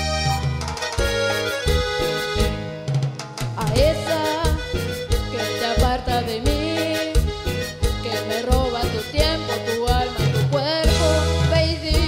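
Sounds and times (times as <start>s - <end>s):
latin dance backing track: 0.0s - 12.0s.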